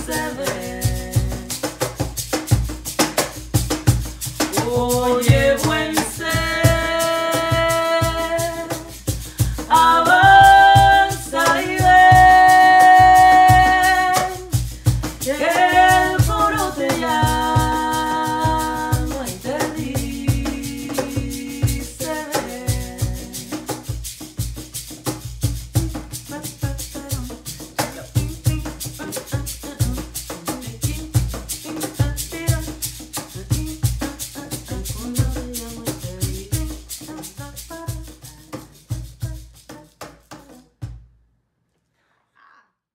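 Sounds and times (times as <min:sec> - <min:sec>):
women singing wordless notes: 0:00.0 - 0:01.8, 0:04.4 - 0:23.8, 0:25.8 - 0:40.7
hand shaker rhythm: 0:00.0 - 0:40.8
cajon bass thumps: 0:00.0 - 0:41.2.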